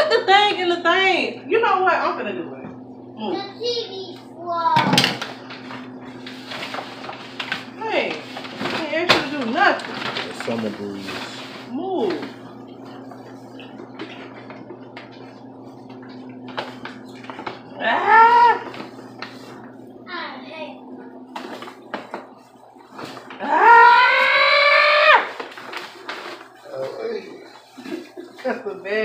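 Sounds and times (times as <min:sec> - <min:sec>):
paper bag crackling: 0:05.2 - 0:20.0, 0:21.3 - 0:29.0
drawn-out vocal cries: 0:23.4 - 0:25.4.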